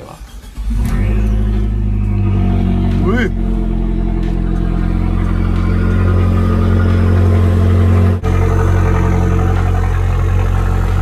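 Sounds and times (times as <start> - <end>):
car engine idling: 0.0 - 11.0
car engine starting: 0.0 - 11.0.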